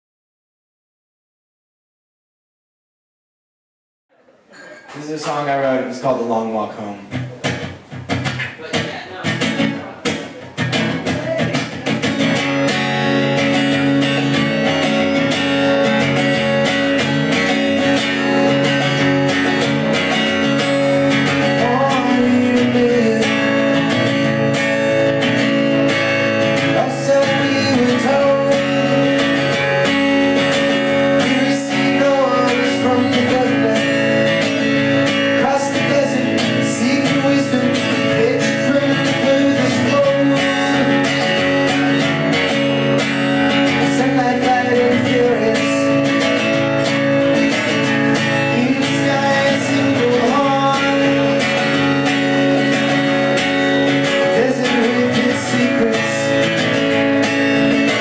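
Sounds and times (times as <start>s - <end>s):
acoustic guitar strumming: 4.6s - 58.0s.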